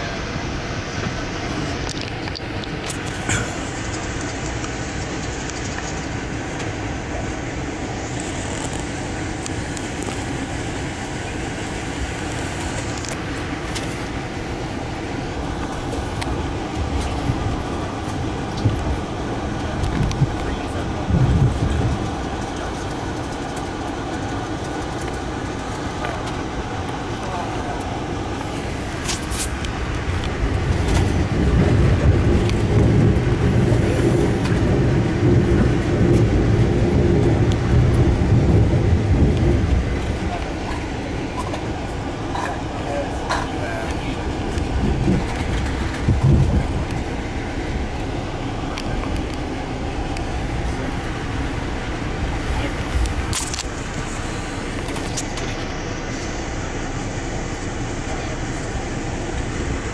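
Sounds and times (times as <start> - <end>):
train wheels rumbling on rails: 0.0 - 59.9
low bumps: 0.9 - 56.5.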